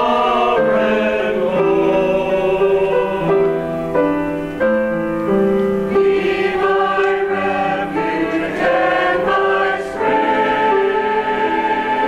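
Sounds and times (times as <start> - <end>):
mixed choir singing held notes: 0.0 - 3.8, 5.8 - 12.0.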